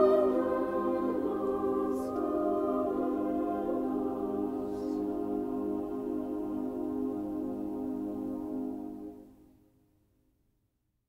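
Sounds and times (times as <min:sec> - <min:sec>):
choir singing held chord: 0:00.0 - 0:09.2.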